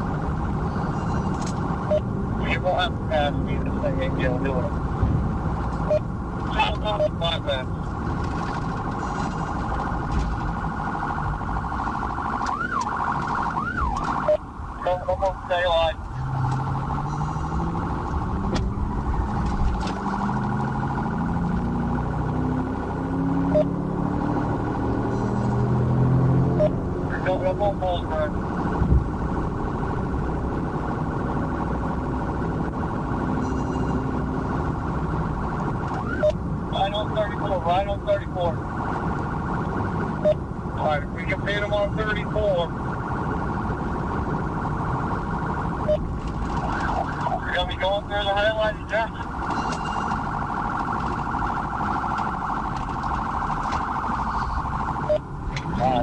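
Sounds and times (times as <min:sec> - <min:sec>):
police siren warbling: 0:00.0 - 0:04.9, 0:05.5 - 0:56.0
car road noise: 0:00.0 - 0:56.0.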